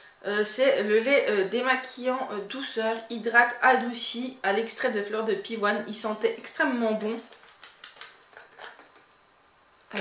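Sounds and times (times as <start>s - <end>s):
plastic bottle clicking and rustling: 7.3s - 9.1s.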